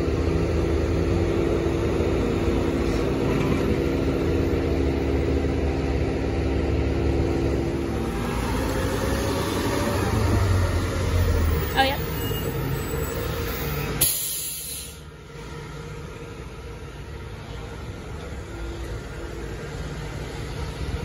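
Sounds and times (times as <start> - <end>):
garbage truck engine running: 0.0 - 21.0
short high squeal: 12.0 - 15.0.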